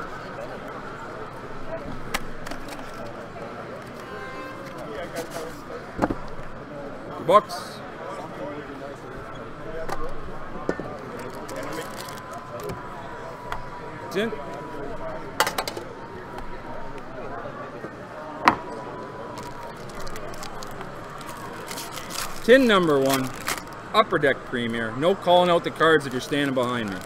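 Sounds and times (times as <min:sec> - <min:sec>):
foil wrapper crinkling: 0:11.2 - 0:12.7, 0:19.4 - 0:23.9, 0:26.0 - 0:27.0.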